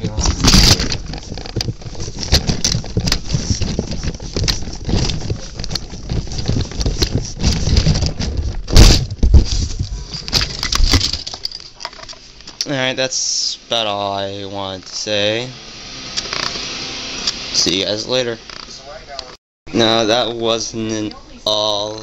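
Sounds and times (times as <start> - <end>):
camera handling rustling and scraping: 0.0 - 12.6
loud knock: 8.7 - 9.5.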